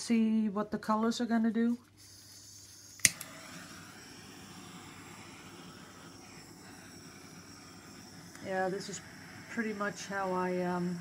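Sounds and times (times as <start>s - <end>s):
gas torch hissing: 1.9s - 11.0s
gas torch ignition click: 2.9s - 11.0s.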